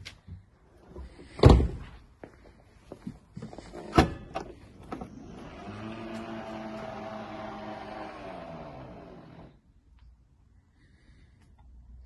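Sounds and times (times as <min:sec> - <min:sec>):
tailgate motor whining: 0:04.9 - 0:09.6.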